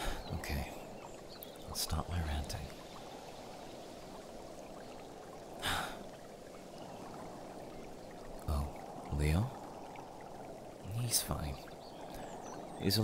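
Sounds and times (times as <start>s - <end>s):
breath: 0.0s - 0.3s, 5.6s - 6.0s.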